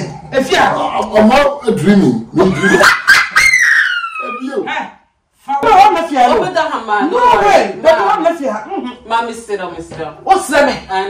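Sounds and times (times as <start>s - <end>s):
woman shrieking with laughter: 2.6s - 4.5s.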